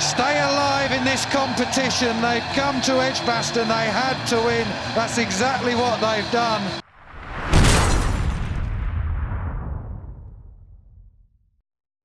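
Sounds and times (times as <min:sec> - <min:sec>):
build-up into heavy boom: 0:06.8 - 0:11.5.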